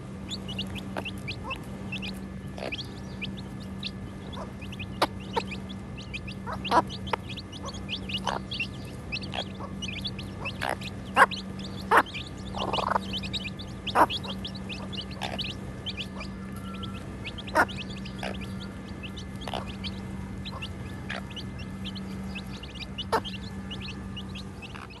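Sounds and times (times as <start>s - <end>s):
chicks peeping: 0.0s - 25.0s
steady low hum: 0.0s - 25.0s.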